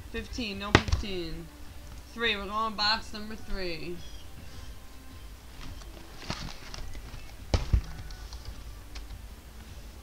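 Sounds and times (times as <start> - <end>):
box thumping on a table: 7.5 - 7.9.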